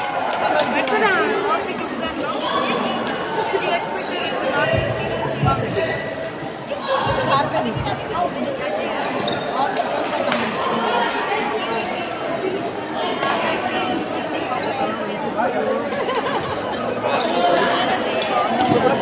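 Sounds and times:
voices chattering in echoing hall: 0.0s - 19.0s
shoes squeaking on floor: 9.0s - 13.2s, 14.2s - 19.0s.

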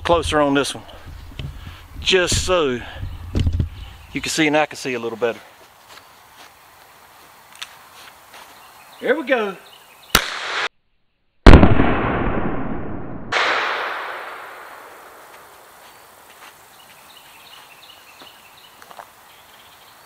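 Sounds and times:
sharp crack: 10.1s - 10.7s, 11.5s - 15.7s
loud burst: 11.5s - 15.3s.

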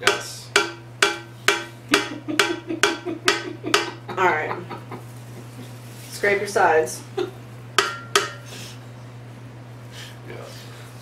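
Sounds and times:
metallic clanks like cowbell: 7.8s - 8.5s.

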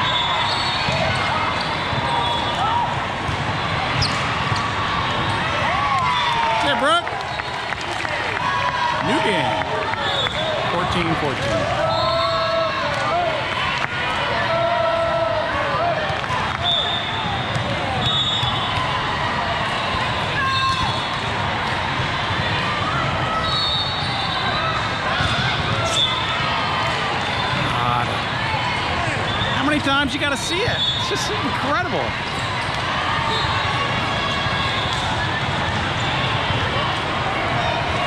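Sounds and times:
players and spectators voices: 0.0s - 38.0s.

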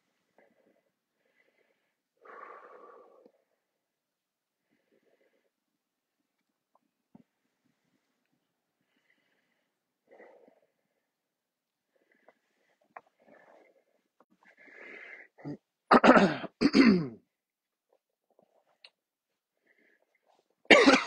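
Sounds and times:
man clearing his throat: 15.4s - 17.2s, 20.7s - 21.0s
man coughing: 15.4s - 17.2s, 20.7s - 21.0s.

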